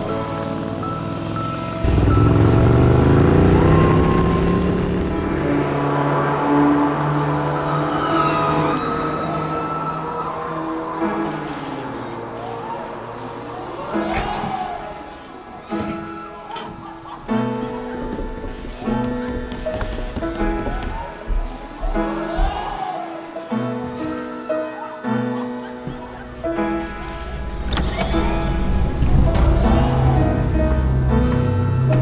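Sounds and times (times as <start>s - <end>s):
background music: 0.0s - 32.0s
motorcycle engine accelerating: 1.8s - 7.4s.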